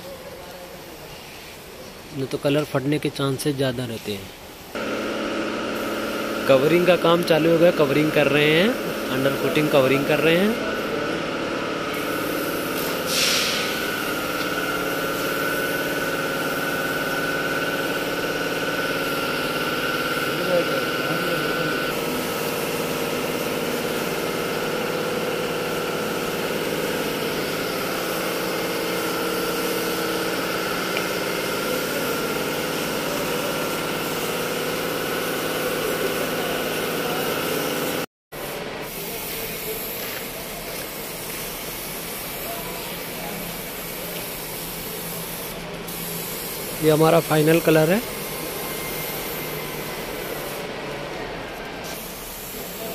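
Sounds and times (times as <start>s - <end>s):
mechanical hum: 0.0s - 52.9s
spray gun hissing: 3.9s - 52.9s.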